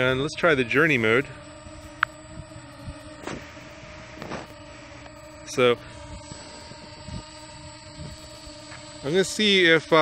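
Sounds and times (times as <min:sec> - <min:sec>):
drone propellers humming: 0:00.0 - 0:10.0.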